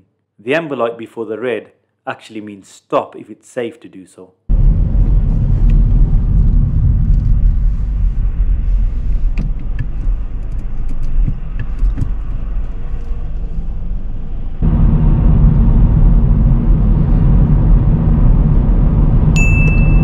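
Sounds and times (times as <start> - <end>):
car engine hum and rumble: 4.5 - 20.0
road rumble at speed: 4.5 - 20.0.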